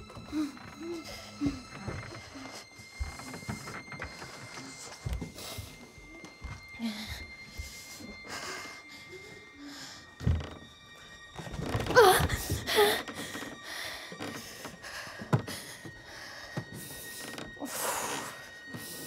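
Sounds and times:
woman breathing raggedly: 0.0s - 10.6s, 11.2s - 19.0s
eerie score tones: 0.0s - 19.0s
woman whimpering: 11.8s - 14.3s.

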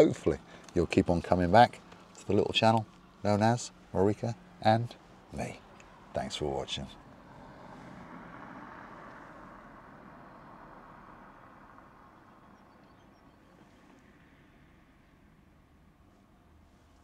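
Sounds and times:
car driving past: 5.5s - 16.6s.

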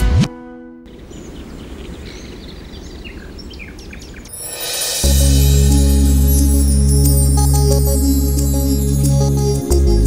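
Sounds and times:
birds chirping: 0.9s - 8.2s.

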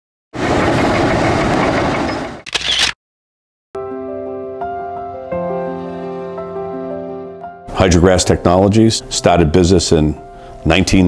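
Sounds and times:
gentle background music: 3.8s - 11.0s.

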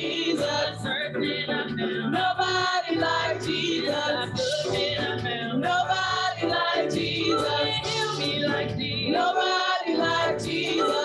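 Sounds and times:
women singing gospel in harmony: 0.0s - 11.0s.

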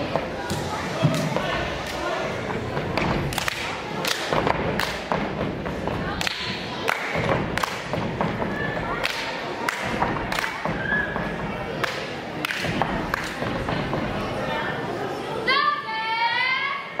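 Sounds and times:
hand claps and slaps: 3.0s - 5.4s, 6.2s - 8.4s, 9.0s - 10.9s, 11.8s - 13.8s.

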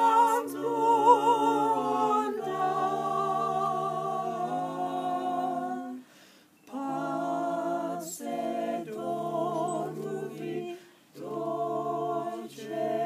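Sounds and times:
voices singing a cappella lullaby: 0.0s - 13.0s.

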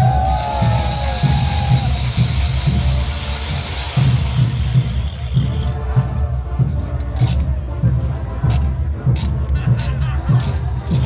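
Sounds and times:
bass drum beat: 0.0s - 11.0s
street parade band music: 0.0s - 11.0s.

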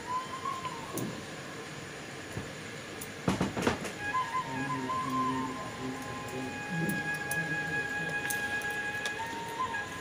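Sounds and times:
fruit cooking in syrup hissing: 3.9s - 10.0s.

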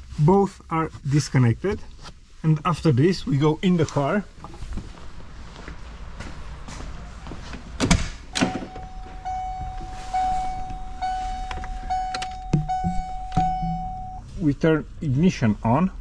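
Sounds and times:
car door thunks: 7.8s - 9.8s, 12.2s - 13.8s
high-pitched warning buzzer: 8.4s - 14.2s.

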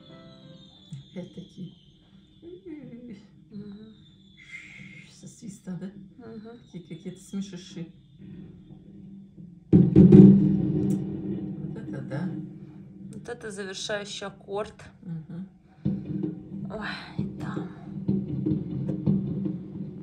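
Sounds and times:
faint high firework whistles: 0.0s - 2.6s, 3.6s - 5.1s.

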